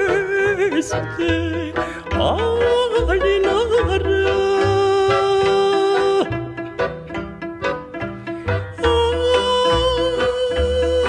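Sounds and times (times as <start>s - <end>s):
low accompaniment: 0.0s - 11.0s.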